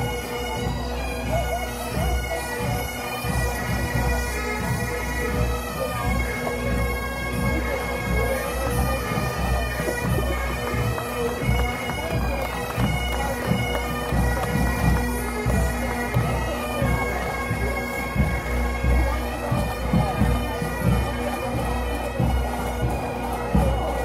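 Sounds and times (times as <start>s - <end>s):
bagpipes playing melody: 0.0s - 24.0s.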